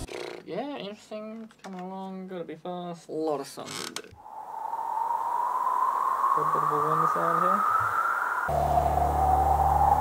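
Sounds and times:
rising whistling tone: 4.2 - 10.0
synthesized wind hiss: 4.2 - 10.0.

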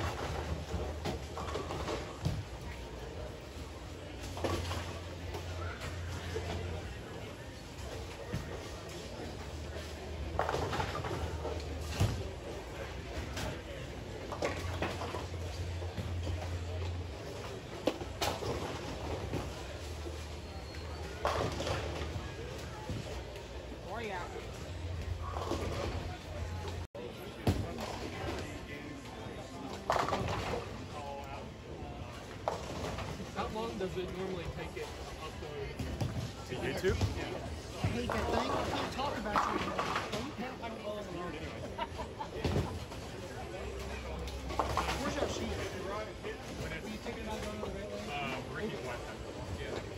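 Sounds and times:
people talking: 33.3 - 49.9.

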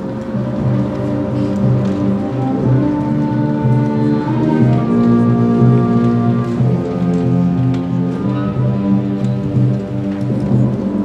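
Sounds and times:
concert band playing chords: 0.0 - 11.0.

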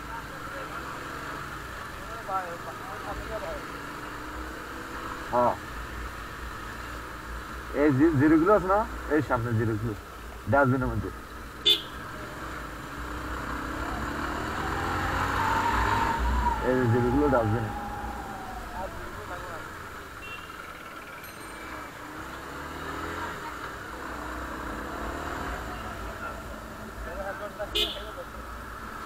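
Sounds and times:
motorcycle engine revving: 11.7 - 20.9, 21.7 - 26.9
steady high tone: 13.6 - 19.8.

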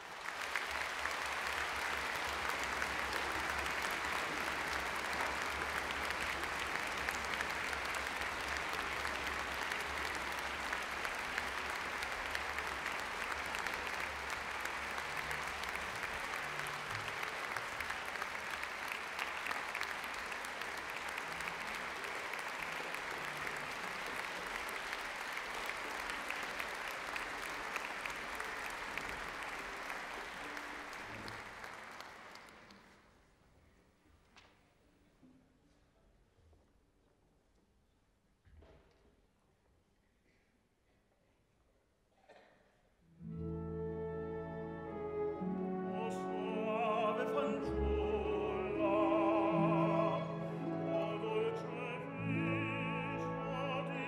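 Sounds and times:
audience applauding: 0.0 - 33.1, 44.7 - 54.0.

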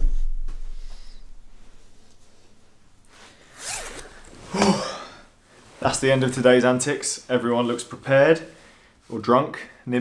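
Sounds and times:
clothes rustling: 1.5 - 9.5
zipper pulled: 3.4 - 4.8.

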